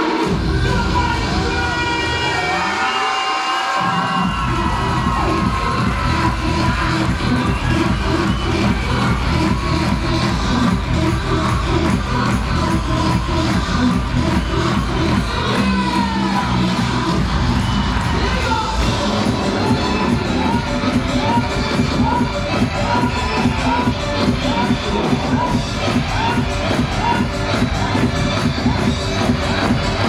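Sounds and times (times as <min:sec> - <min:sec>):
crowd cheering: 0:00.0 - 0:30.0
dance music over loudspeakers: 0:00.0 - 0:30.0.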